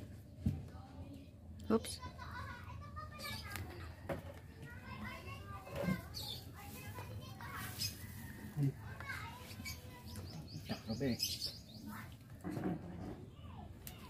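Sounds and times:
voices of children and people: 0:00.0 - 0:14.0.

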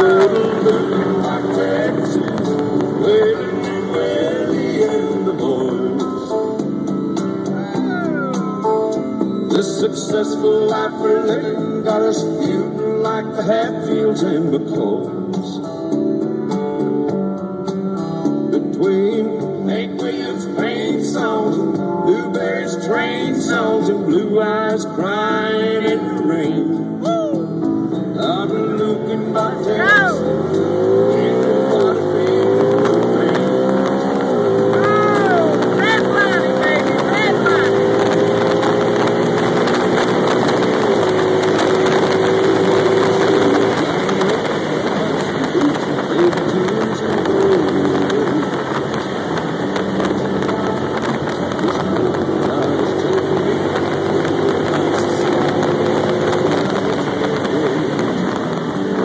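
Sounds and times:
vehicle engine accelerating: 0:00.0 - 0:07.9, 0:27.6 - 0:59.0.

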